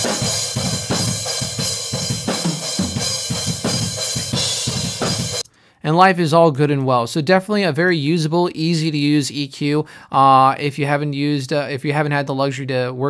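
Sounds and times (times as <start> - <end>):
metal drum breakdown: 0.0 - 5.5.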